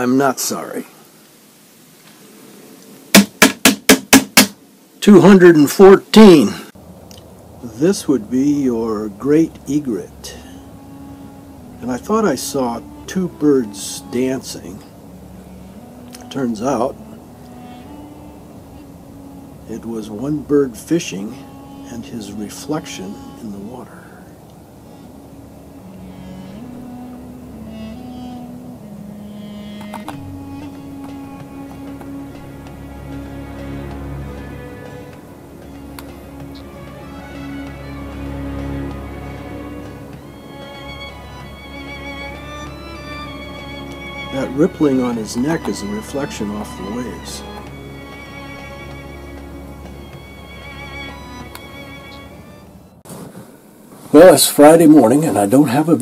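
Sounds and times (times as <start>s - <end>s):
sharp loud strikes: 3.1s - 4.6s
slow melody of low held notes: 7.2s - 53.0s.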